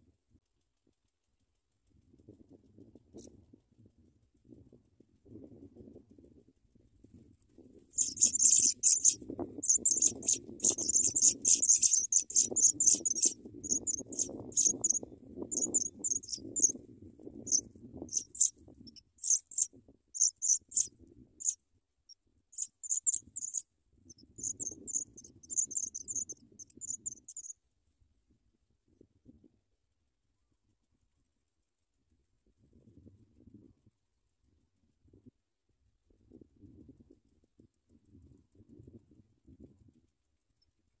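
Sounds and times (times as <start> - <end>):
nestlings begging calls: 8.0 - 16.7, 17.5 - 18.5, 19.2 - 21.6, 22.6 - 23.6, 24.4 - 27.5.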